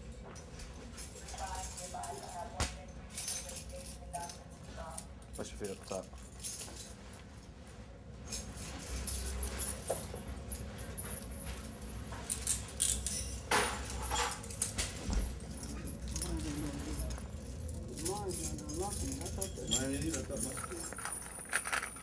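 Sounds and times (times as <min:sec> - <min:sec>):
metal chains clinking: 0:00.6 - 0:07.2, 0:08.2 - 0:22.0.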